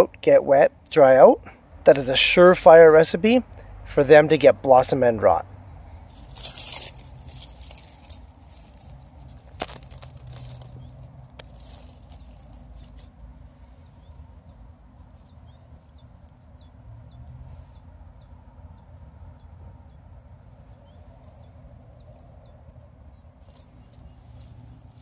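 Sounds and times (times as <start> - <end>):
foliage rustling and clicking: 6.1 - 13.3, 23.4 - 25.0
small birds chirping: 6.1 - 25.0.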